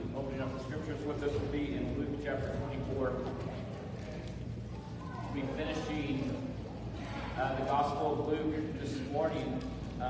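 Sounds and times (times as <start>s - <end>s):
man speaking: 0.0s - 3.3s, 5.4s - 6.4s, 7.4s - 10.0s
steady low hum: 0.0s - 10.0s.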